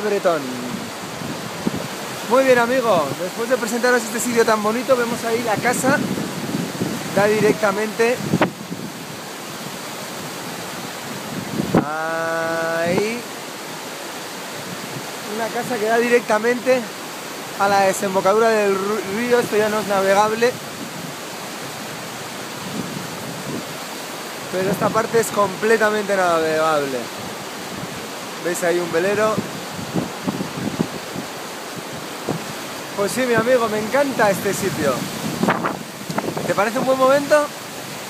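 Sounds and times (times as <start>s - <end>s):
wind buffeting microphone: 0.0s - 15.7s, 17.1s - 25.7s, 27.0s - 38.0s
water rushing over rocks: 0.0s - 38.0s.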